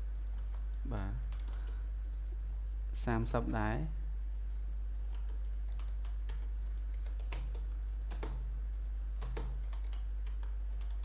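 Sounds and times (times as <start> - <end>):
steady low hum: 0.0 - 11.0
keyboard and mouse clicking: 0.1 - 2.4, 4.9 - 11.0.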